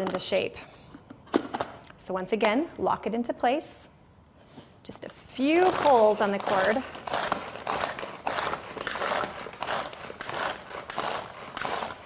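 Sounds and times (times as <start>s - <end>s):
hand chopper whirring and chopping: 5.4s - 12.0s.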